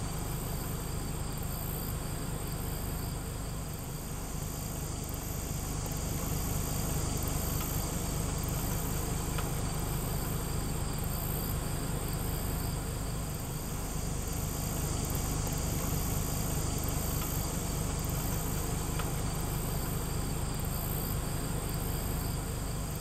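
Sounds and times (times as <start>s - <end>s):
insects chirping: 0.0s - 23.0s.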